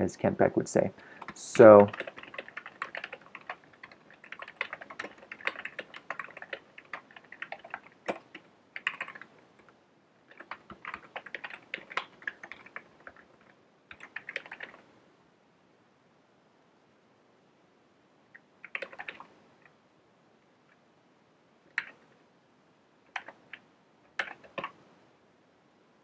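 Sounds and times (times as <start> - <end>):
typing on computer keyboard: 1.2 - 9.7, 10.3 - 14.8, 18.6 - 19.3, 21.7 - 22.0, 23.1 - 23.6, 24.2 - 24.8.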